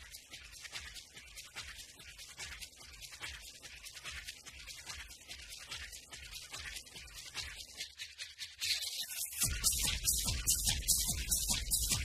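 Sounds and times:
hissing hi-hat and percussion hits: 8.5s - 12.0s.

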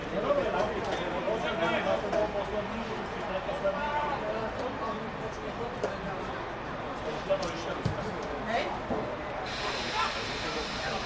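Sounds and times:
steady background hiss: 9.2s - 11.0s.

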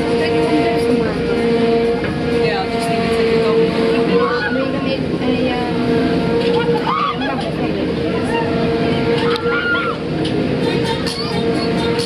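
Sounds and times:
fairground ride drone: 0.0s - 12.0s
voices and chatter: 0.0s - 12.0s.

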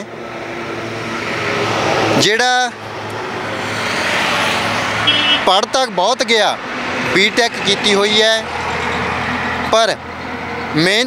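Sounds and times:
vehicle approaching: 0.0s - 11.0s.

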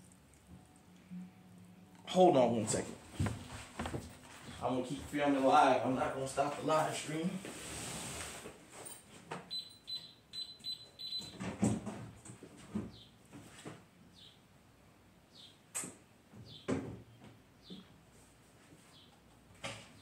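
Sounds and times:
knocks and clunks in a room: 2.8s - 6.2s, 9.2s - 14.3s, 15.4s - 18.1s
high beeps: 9.5s - 11.3s.

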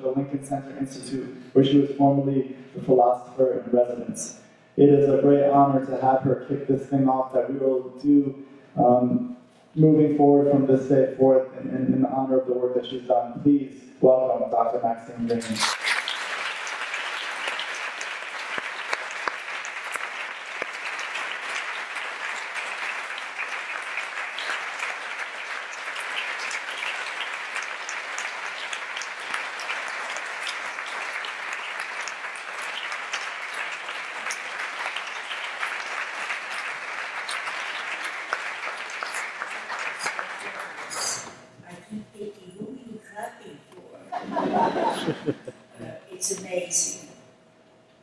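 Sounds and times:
audience applause: 15.4s - 41.3s.

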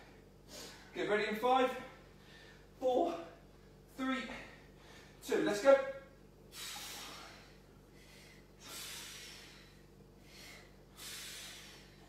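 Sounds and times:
forceful breaths out: 6.5s - 12.0s.

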